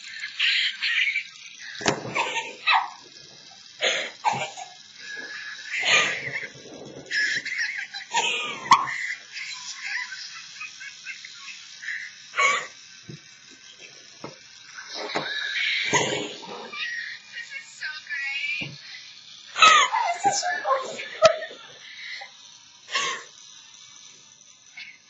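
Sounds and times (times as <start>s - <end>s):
high-pitched laughing and squealing: 0.0s - 3.2s, 3.8s - 12.8s, 14.7s - 23.4s, 24.7s - 25.0s.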